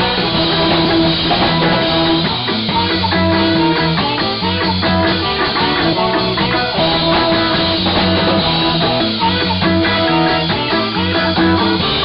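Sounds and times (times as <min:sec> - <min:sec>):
drums: 0:00.0 - 0:12.0
guitar: 0:00.0 - 0:12.0
saxophone held notes: 0:00.0 - 0:12.0.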